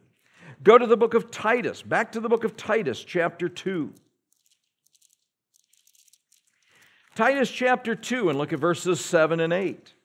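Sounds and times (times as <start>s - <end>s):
thin pages being turned: 4.3s - 7.0s.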